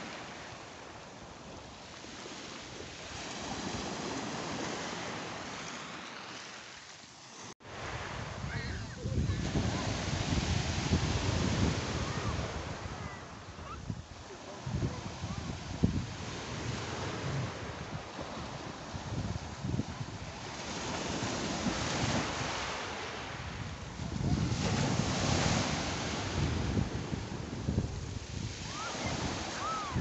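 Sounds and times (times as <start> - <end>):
waves on a pebble beach: 0.0 - 30.0.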